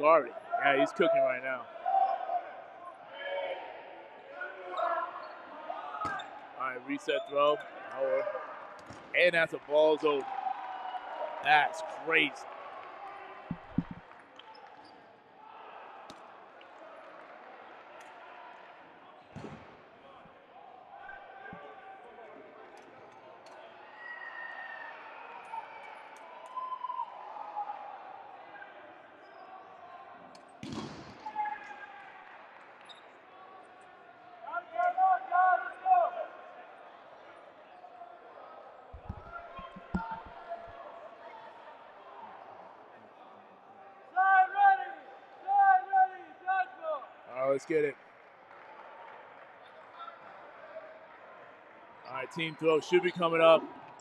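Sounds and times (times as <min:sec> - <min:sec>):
players' voices echoing: 0:00.0 - 0:10.3, 0:11.4 - 0:12.5, 0:38.6 - 0:42.6, 0:52.0 - 0:54.0
balls bouncing on wooden floor: 0:13.5 - 0:14.0, 0:39.0 - 0:40.8.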